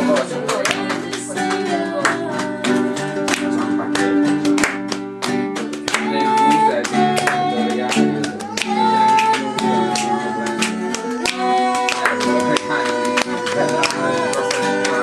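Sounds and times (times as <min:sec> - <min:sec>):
acoustic guitar strumming: 0:00.0 - 0:15.0
person singing: 0:00.0 - 0:15.0.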